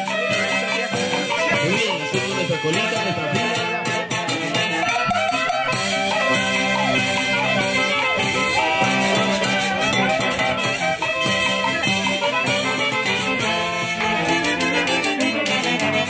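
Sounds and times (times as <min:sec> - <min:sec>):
brass and clarinet melody: 0:00.0 - 0:16.0
folk orchestra dance tune: 0:00.0 - 0:16.0
steady percussion beat: 0:00.0 - 0:16.0.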